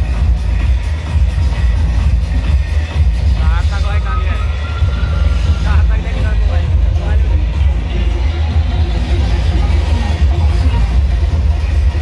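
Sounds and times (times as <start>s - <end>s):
bass-heavy dance music: 0.0s - 12.0s
person speaking over music: 3.2s - 4.8s, 5.4s - 8.1s.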